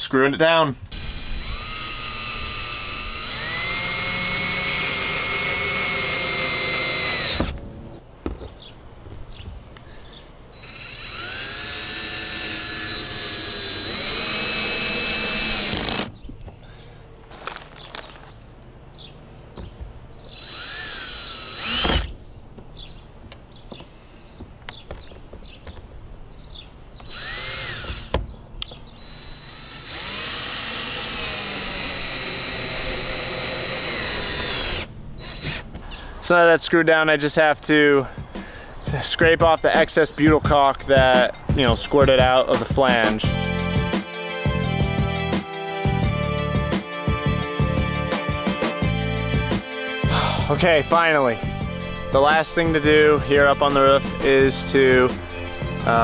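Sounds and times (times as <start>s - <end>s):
cordless drill whining: 0.9s - 7.5s, 10.6s - 16.2s, 20.3s - 22.1s, 27.1s - 28.2s, 29.0s - 35.7s.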